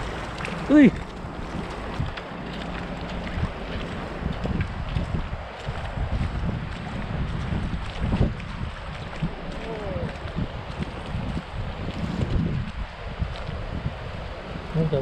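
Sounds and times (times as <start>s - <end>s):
footsteps splashing through water: 0.0s - 15.0s
wind buffeting microphone: 0.0s - 15.0s.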